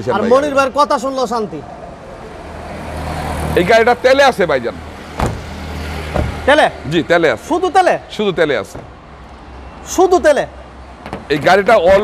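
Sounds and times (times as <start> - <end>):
man speaking: 0.0 - 1.7, 6.4 - 8.8, 11.3 - 12.0
car door shutting: 5.2 - 5.5, 6.1 - 6.4.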